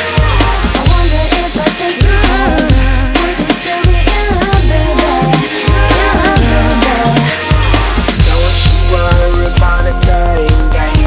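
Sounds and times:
pop r and b music with heavy bass: 0.0s - 11.0s.

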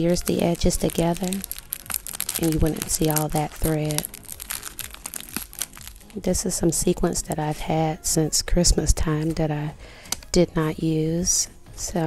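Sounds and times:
plastic bag crinkling: 0.0s - 6.2s.

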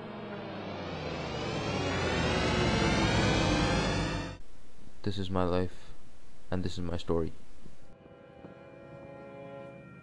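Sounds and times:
rising riser sound effect: 0.0s - 4.4s.

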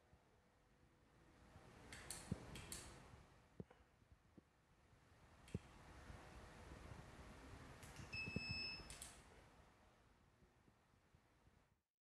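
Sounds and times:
electronic beep: 8.2s - 8.9s.

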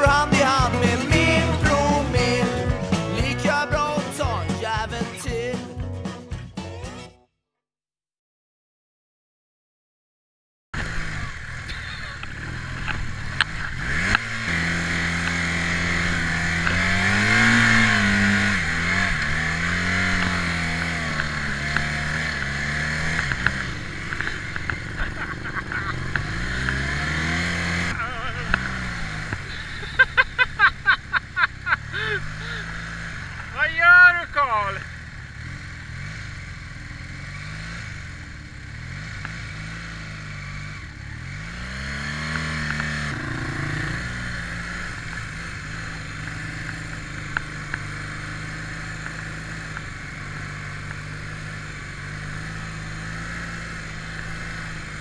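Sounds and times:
motorcycle engine running: 0.0s - 6.6s, 10.8s - 55.0s
loud rising-and-falling call: 43.0s - 44.2s.

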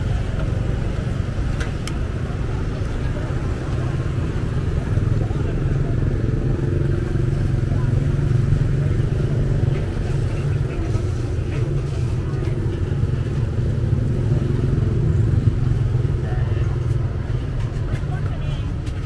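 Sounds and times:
people talking: 0.0s - 19.0s
road traffic and motorbikes rumble: 0.0s - 19.0s.

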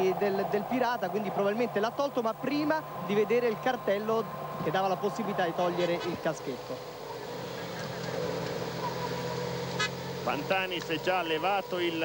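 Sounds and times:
vehicle engines humming: 0.0s - 12.0s.

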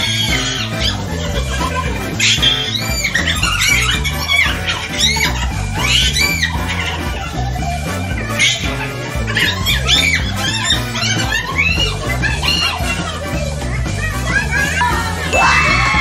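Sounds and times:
background music with bass line: 0.0s - 16.0s
women laughing: 0.0s - 16.0s
women shouting excitedly: 14.6s - 16.0s.

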